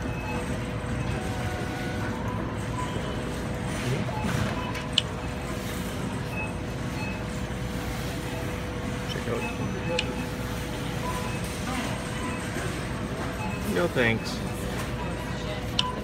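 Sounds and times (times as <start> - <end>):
constant hum: 0.0 - 16.0.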